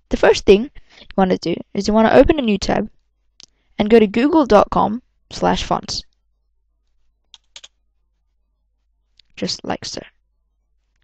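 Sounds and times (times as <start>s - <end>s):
computer keyboard keystrokes: 7.3s - 7.7s.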